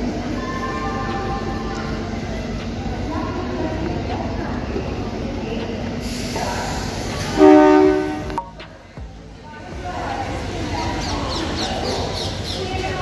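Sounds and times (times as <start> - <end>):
voices on railway platform: 0.0 - 13.0
two-tone train horn: 7.3 - 8.4.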